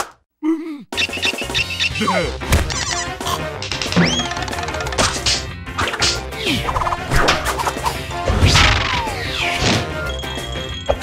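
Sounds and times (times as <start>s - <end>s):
busy background music: 1.0s - 11.0s.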